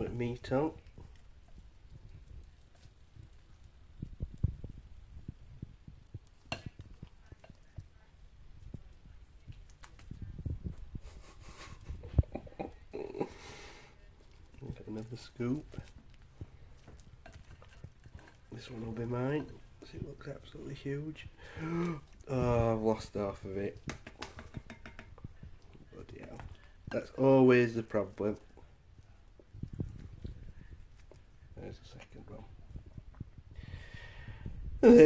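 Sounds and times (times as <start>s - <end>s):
spoon scraping dish: 16.7s - 20.6s, 23.1s - 25.3s
spoon knocking ceramic dish: 23.9s - 25.1s.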